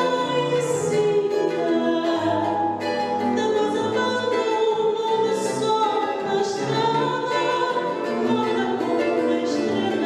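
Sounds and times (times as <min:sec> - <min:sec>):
cavaquinho strumming: 0:00.0 - 0:10.0
woman singing: 0:00.0 - 0:10.0
choir singing: 0:05.9 - 0:10.0.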